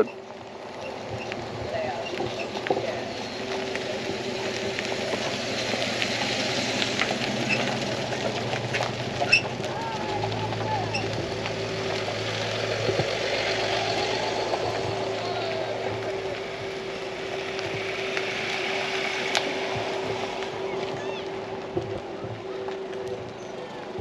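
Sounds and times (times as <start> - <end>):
low drone: 0.0 - 24.0
outdoor background noise: 0.0 - 24.0
steady motor hum: 0.0 - 24.0.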